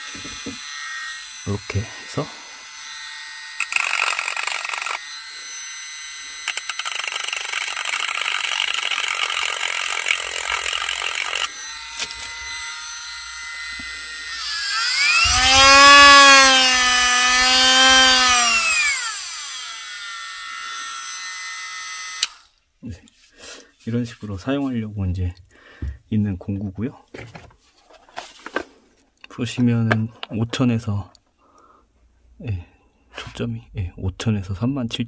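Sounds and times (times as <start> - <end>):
rotary tool motor whining: 0.0 - 22.6.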